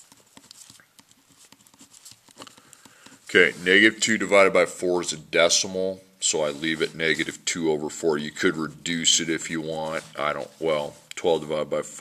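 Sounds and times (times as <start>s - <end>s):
pen writing on paper: 0.0s - 3.6s.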